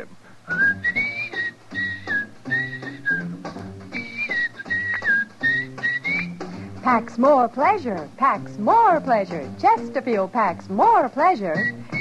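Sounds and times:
man whistling a melody: 0.4s - 6.4s, 11.6s - 12.0s
small band accompaniment: 0.5s - 7.2s.

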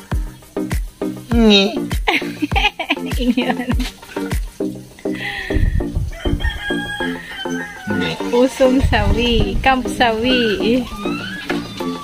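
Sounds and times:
background music with beat: 0.0s - 12.0s
rooster crowing: 5.2s - 8.6s.

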